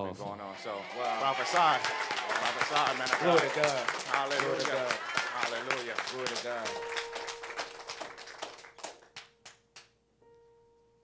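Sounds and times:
hand clapping: 0:00.9 - 0:10.0.

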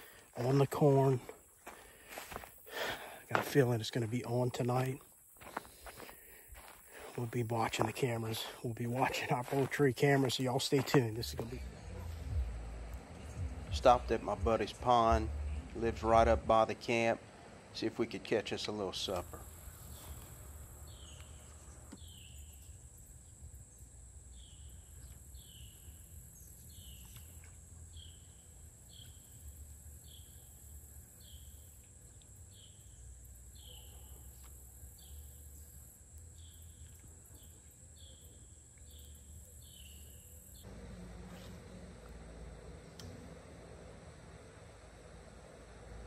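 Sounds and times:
low rumble: 0:11.4 - 0:16.6.

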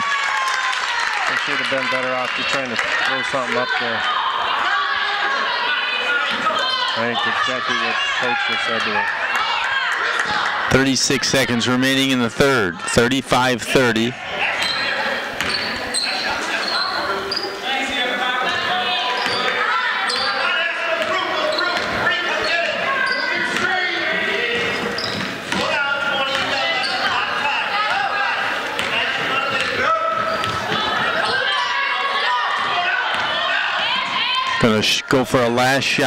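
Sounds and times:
spectators' voices and shouts: 0:00.0 - 0:36.0.

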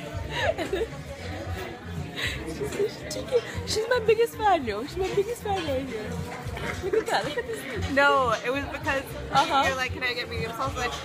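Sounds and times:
background music: 0:00.0 - 0:11.0
crowd chatter: 0:00.0 - 0:11.0
women laughing: 0:00.1 - 0:01.4, 0:06.5 - 0:07.9.

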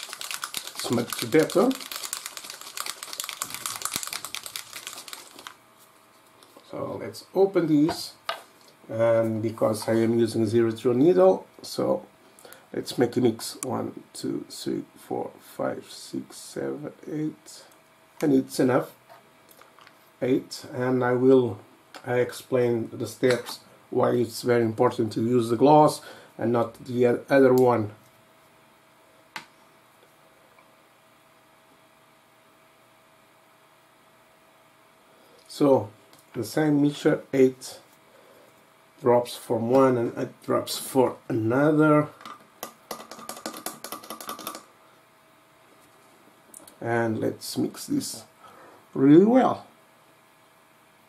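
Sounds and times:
mixing ball rattling in bottle: 0:00.0 - 0:05.6, 0:42.6 - 0:44.7.

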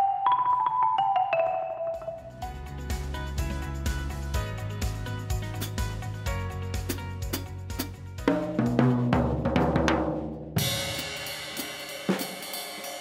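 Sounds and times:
drum kit playing: 0:01.9 - 0:13.0
cymbal crash ringing: 0:10.6 - 0:13.0.

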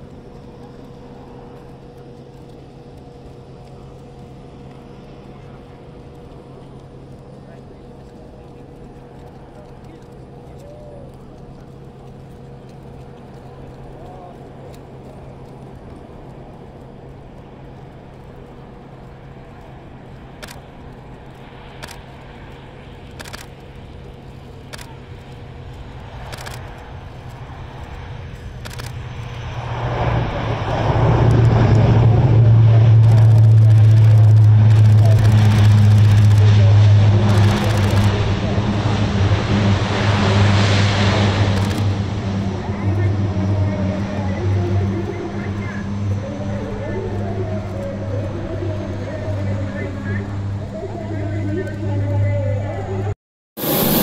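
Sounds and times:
turboprop propeller hum: 0:00.0 - 0:54.0.

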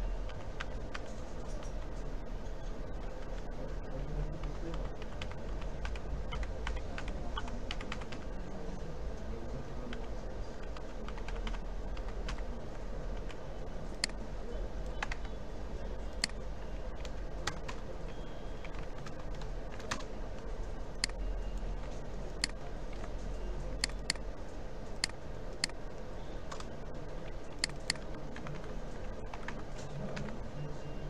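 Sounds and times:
steady low hum: 0:00.0 - 0:31.0
computer keyboard clicks: 0:04.4 - 0:08.2, 0:10.7 - 0:12.4, 0:14.9 - 0:15.4, 0:16.2 - 0:16.4, 0:17.0 - 0:17.8, 0:18.6 - 0:20.1, 0:21.0 - 0:21.2, 0:23.8 - 0:24.2, 0:27.5 - 0:28.7, 0:29.3 - 0:30.4.

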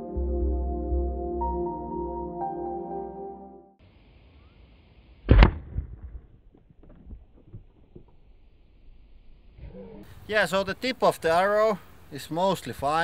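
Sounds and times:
crossbow bolt sharp crack: 0:05.3 - 0:06.0.

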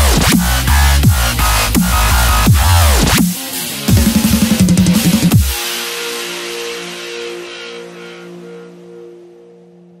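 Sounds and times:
held synth chord with hissing wash: 0:05.4 - 0:10.0.

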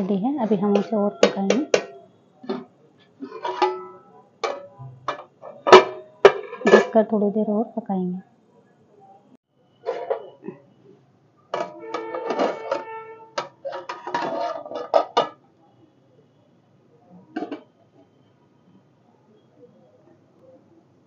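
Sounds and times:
metal lid clanking on pot: 0:00.6 - 0:07.0, 0:09.9 - 0:10.4, 0:11.6 - 0:15.4, 0:17.4 - 0:17.7.

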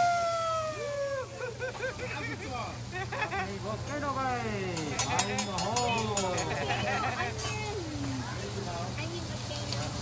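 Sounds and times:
voices: 0:00.6 - 0:10.0.

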